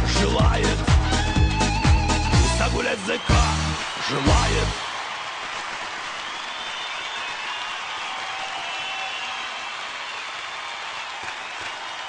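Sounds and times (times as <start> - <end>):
audience applauding: 2.6 - 12.0.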